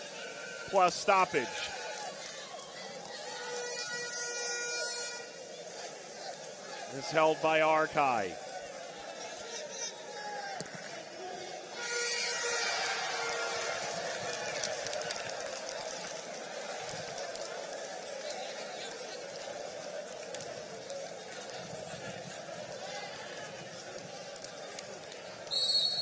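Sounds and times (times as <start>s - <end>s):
distant shouts: 0.0s - 2.6s, 6.8s - 8.5s
crowd background noise: 0.0s - 26.0s.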